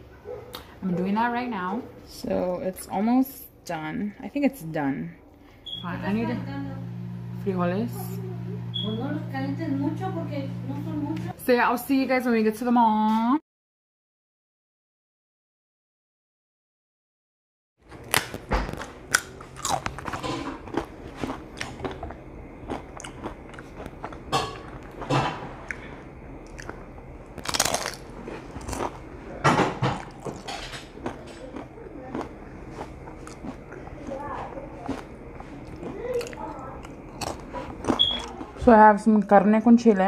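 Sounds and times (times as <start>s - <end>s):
crunchy food being chewed: 17.9s - 38.7s.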